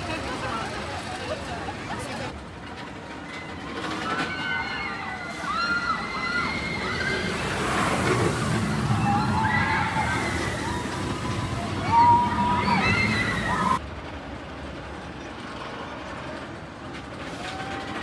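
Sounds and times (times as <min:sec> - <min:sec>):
roller coaster rumbling on track: 0:00.0 - 0:18.0
riders screaming: 0:03.2 - 0:13.8.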